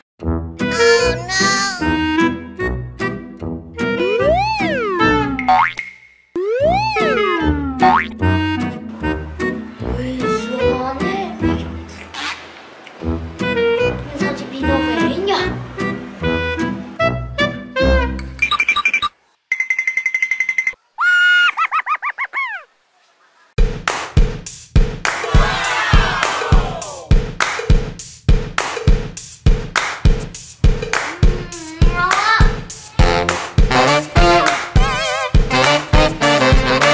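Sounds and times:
children's background music: 0:00.2 - 0:05.8, 0:06.4 - 0:12.0, 0:13.0 - 0:18.3, 0:30.6 - 0:36.9
falling whistle-like notes: 0:04.0 - 0:07.9
boing sound effects: 0:04.0 - 0:08.6
rapidly warbling beep: 0:04.1 - 0:08.1
background music with a beat: 0:23.6 - 0:36.9.

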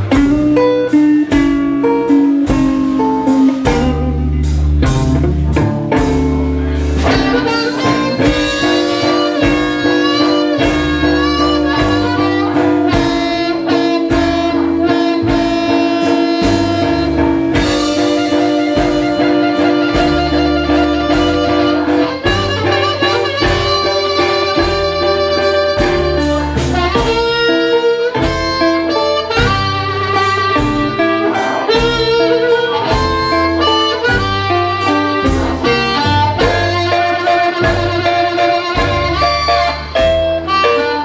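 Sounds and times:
blues band playing: 0:00.0 - 0:41.0
guitar: 0:00.0 - 0:41.0.

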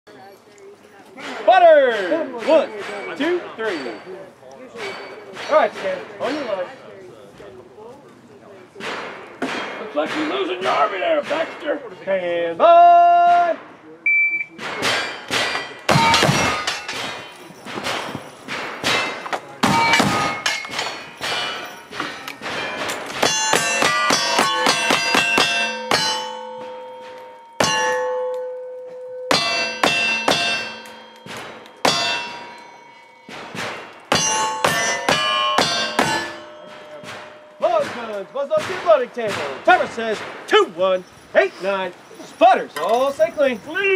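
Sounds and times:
steel target ringing clang: 0:14.6 - 0:39.6.

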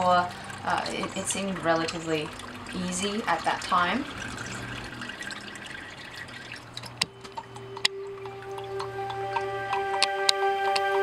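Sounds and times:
soft background music: 0:00.0 - 0:11.0
water dripping and trickling: 0:00.0 - 0:11.0.

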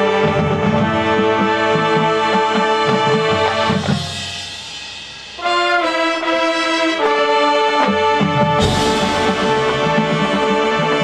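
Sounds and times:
drums: 0:00.0 - 0:11.0
brass section chords: 0:05.2 - 0:11.0
deep percussion hit: 0:08.6 - 0:10.5.

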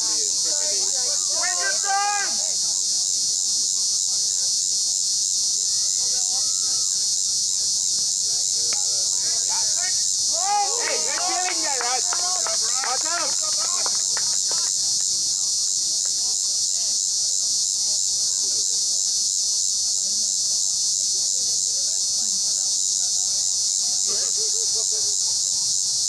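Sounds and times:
high-pitched insect chorus: 0:00.0 - 0:26.0.

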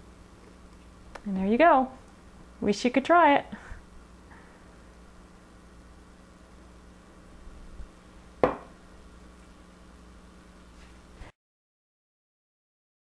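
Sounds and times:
low steady hum: 0:00.0 - 0:11.3
sharp knock: 0:08.4 - 0:08.7.

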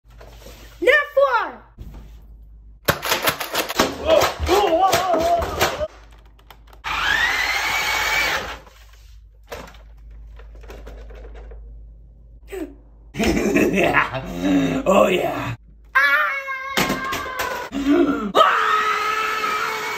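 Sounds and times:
toy electric motors whirring: 0:06.8 - 0:08.7.

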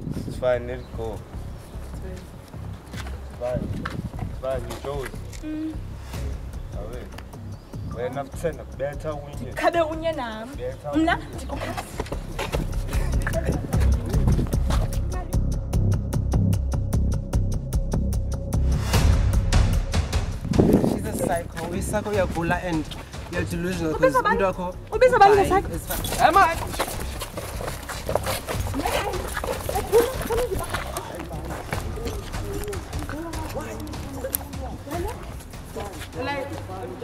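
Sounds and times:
footsteps on concrete: 0:01.1 - 0:05.5, 0:11.2 - 0:15.3, 0:20.5 - 0:24.2, 0:25.2 - 0:37.0
voices shouting: 0:24.0 - 0:35.5.

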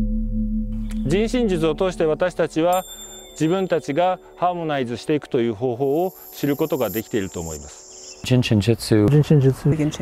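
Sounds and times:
men speaking: 0:01.0 - 0:10.0
high-pitched insect trill: 0:02.8 - 0:09.3.

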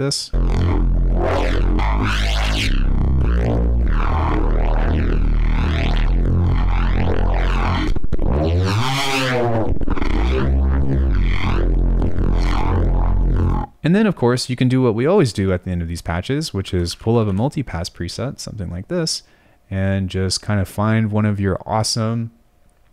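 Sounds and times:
sweeping synth bass: 0:00.3 - 0:13.8.

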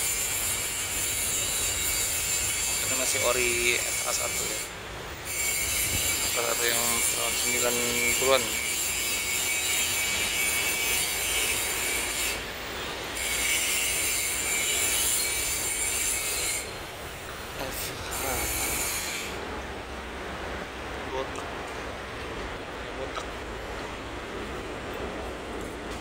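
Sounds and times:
high-pitched shrill whine: 0:00.0 - 0:19.4.

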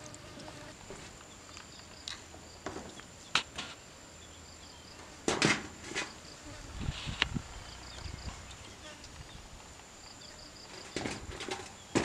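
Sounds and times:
insect chirps: 0:00.0 - 0:12.0.

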